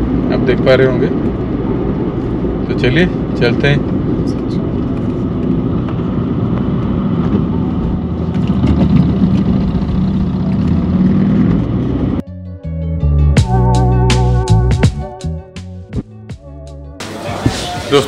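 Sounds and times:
tyre and road rumble: 0.0s - 12.2s
car engine hum: 0.0s - 12.3s
background music: 12.2s - 18.0s.

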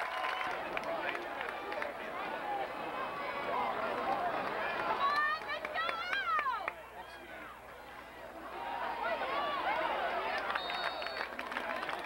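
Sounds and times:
spectators chattering and shouting: 0.0s - 12.0s.

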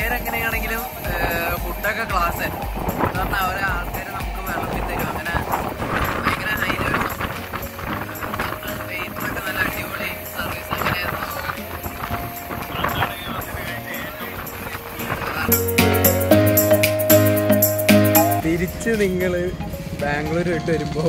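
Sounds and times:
man talking: 0.0s - 7.4s, 8.2s - 15.8s, 18.4s - 21.0s
moving passenger train: 0.0s - 17.0s, 18.4s - 21.0s
background music: 0.0s - 21.0s.

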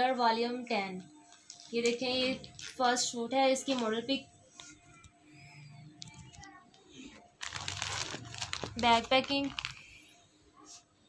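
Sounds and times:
plastic bag crinkling: 1.3s - 3.9s, 6.3s - 10.0s.

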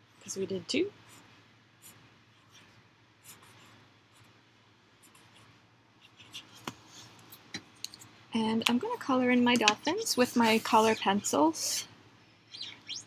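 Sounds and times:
marker scratching on paper: 1.0s - 4.3s, 5.0s - 7.1s, 10.4s - 11.4s.

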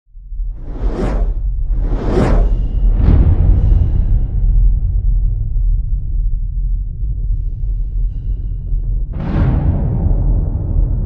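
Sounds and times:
deep low rumble: 0.1s - 11.0s
whoosh: 0.4s - 5.1s.

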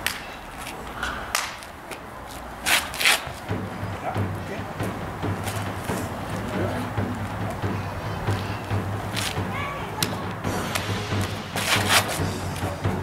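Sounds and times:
clothing swishes and hand slaps: 10.0s - 12.7s.

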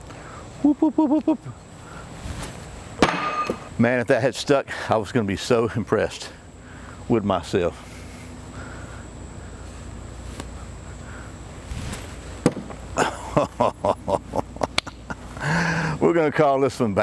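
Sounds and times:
man laughing: 0.6s - 1.7s, 12.9s - 16.0s.

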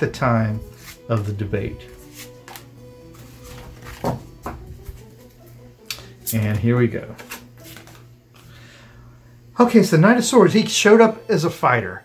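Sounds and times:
cards sliding and clicking: 0.6s - 4.1s, 7.1s - 8.5s.

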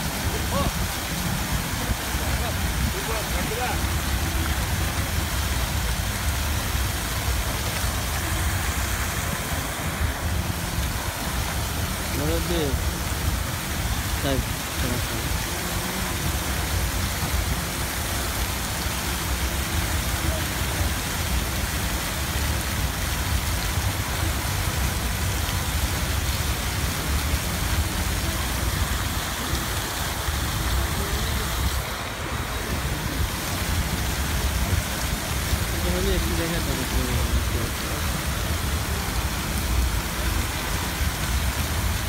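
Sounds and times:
fountain water splashing: 0.0s - 42.0s.

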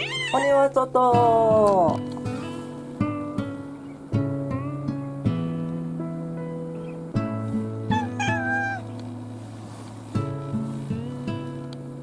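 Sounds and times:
cat meowing: 0.0s - 0.8s, 7.9s - 8.9s
acoustic guitar music: 0.0s - 12.0s.

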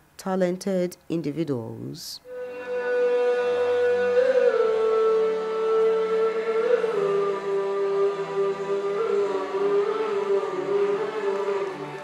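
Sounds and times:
man singing into a microphone: 2.3s - 12.0s.

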